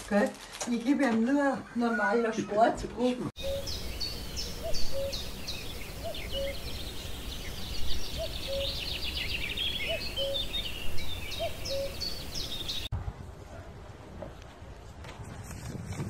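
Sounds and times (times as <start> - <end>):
birds chirping in a forest: 3.4 - 12.9.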